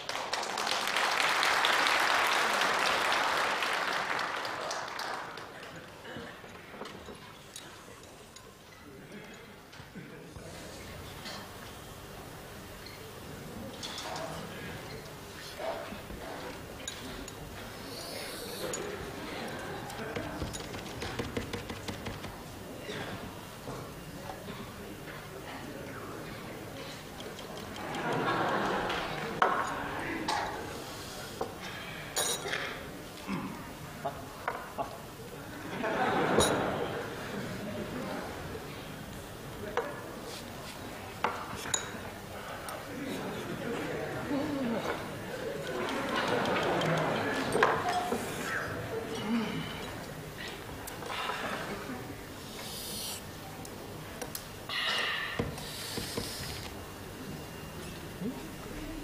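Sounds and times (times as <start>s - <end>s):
audience laughter: 18.8s - 20.4s, 27.6s - 29.4s, 35.5s - 38.4s, 43.0s - 49.2s
chopsticks and spoon clinking bowls: 41.5s - 42.0s
man hissing through teeth: 52.5s - 53.2s.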